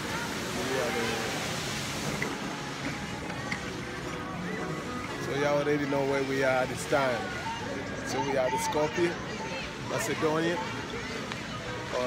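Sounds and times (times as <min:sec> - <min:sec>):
fountain splashing: 0:00.0 - 0:12.0
murmur of crowd voices: 0:00.0 - 0:12.0.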